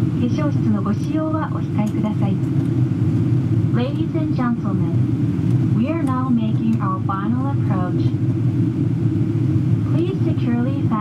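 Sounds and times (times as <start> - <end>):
airliner cabin engine drone: 0.0 - 11.0.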